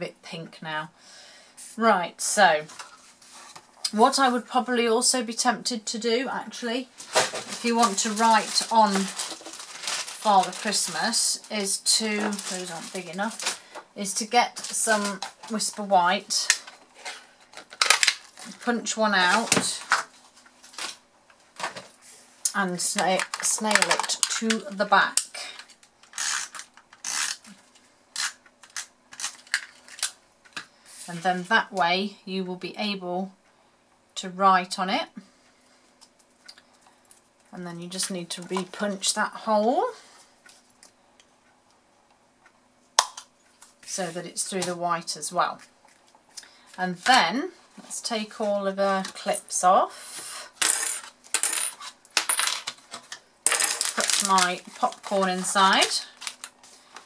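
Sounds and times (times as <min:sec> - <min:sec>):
paper rustling: 0:07.0 - 0:13.7, 0:52.7 - 0:57.0.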